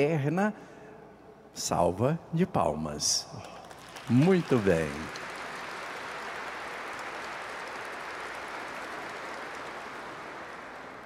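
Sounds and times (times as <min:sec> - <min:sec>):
congregation applauding: 0:03.4 - 0:11.0.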